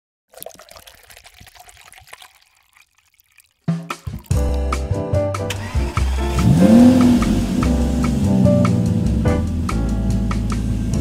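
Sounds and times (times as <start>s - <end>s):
liquid pouring and splashing: 0.3s - 4.6s.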